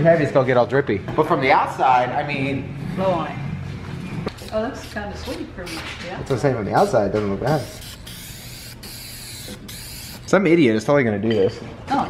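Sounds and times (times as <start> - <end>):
aerosol spray can hissing: 7.5 - 10.3.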